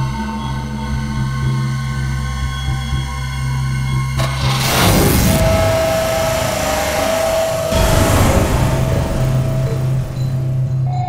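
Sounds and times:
low drone: 3.7s - 11.0s
rushing noise swells: 4.2s - 11.0s.

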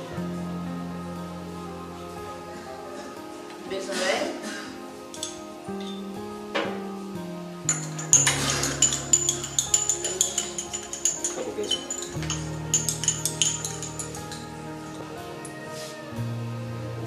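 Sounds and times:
background music with held notes: 0.0s - 17.0s
metal spoon clinking against cup: 7.7s - 14.4s.

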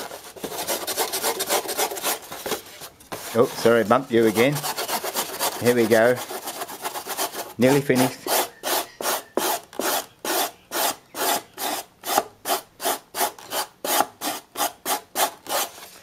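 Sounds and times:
abrasive disc rasping on foam: 0.0s - 15.9s.

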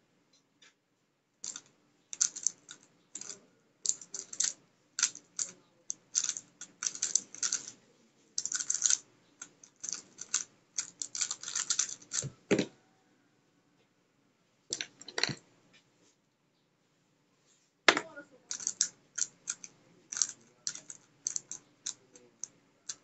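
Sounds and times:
plastic puzzle cube clicking: 2.2s - 7.8s, 8.4s - 12.4s, 18.5s - 23.0s.

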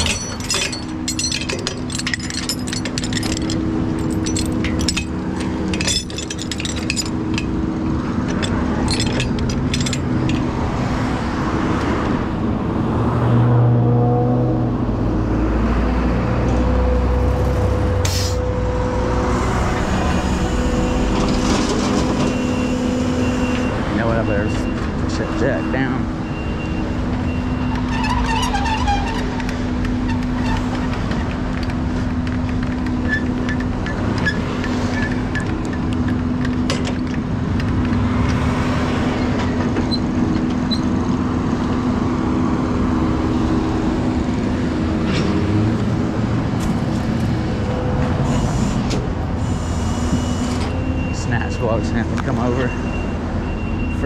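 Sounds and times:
chains clinking and rattling: 0.0s - 11.0s
road traffic passing: 0.0s - 54.0s.

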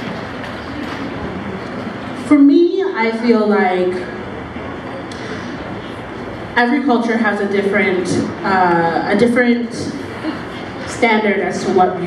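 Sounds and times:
hall room noise rush: 0.0s - 12.0s.

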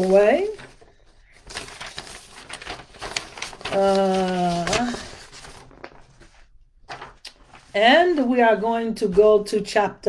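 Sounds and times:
paper rustling: 0.0s - 8.3s.

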